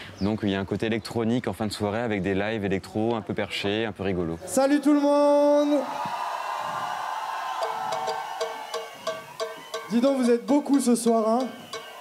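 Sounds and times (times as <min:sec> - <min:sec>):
light ticking percussion: 0:07.6 - 0:12.0.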